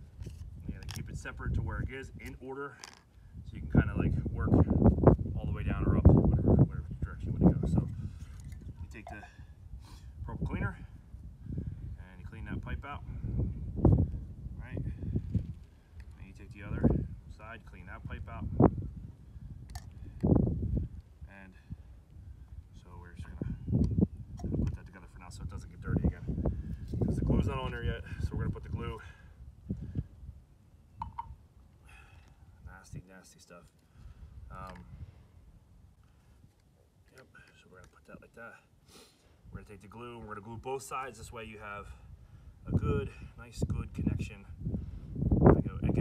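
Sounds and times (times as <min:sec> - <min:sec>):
handling plastic pipe fittings: 0:00.2 - 0:01.1, 0:02.2 - 0:03.2, 0:07.9 - 0:09.3.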